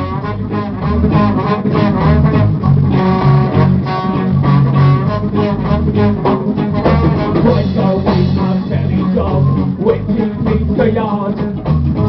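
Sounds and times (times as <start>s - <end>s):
bass: 0.0s - 12.0s
drum kit: 0.0s - 12.0s
guitar: 0.0s - 12.0s
reggae band playing: 0.0s - 12.0s.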